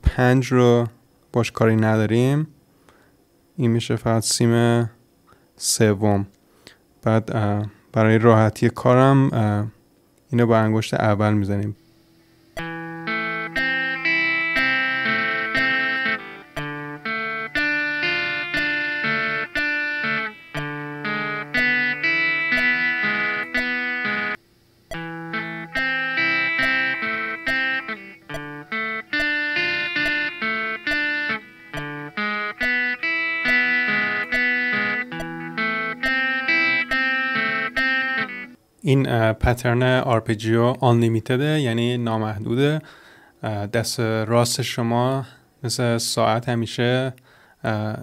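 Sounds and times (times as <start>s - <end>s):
electric guitar arpeggio: 12.6s - 24.4s, 25.0s - 38.6s
metronome clicks: 12.6s - 38.6s.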